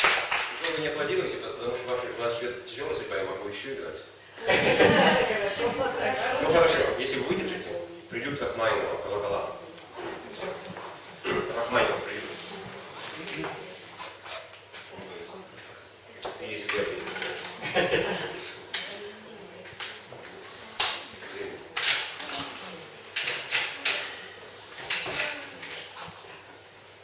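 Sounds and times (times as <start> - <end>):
murmured voices in a hall: 0.6 - 27.0.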